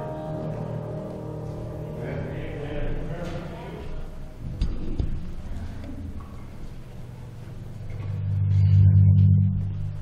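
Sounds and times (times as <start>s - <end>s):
low sustained keyboard chord: 0.0s - 4.5s, 5.4s - 10.0s.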